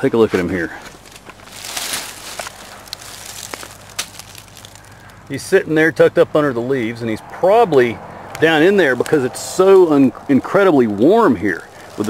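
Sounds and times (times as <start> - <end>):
footsteps rustling through dry leaves: 0.0 - 5.4, 8.6 - 12.0.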